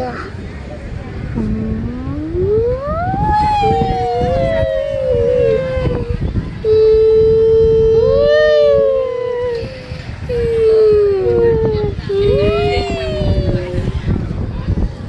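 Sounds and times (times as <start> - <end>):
low rumble of moving ride: 0.0 - 15.0
child's drawn-out vocal sounds: 1.4 - 14.1.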